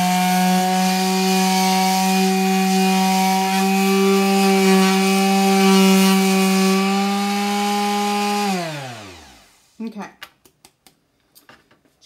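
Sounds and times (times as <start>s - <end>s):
tools clicking and knocking on table: 10.2s - 11.9s.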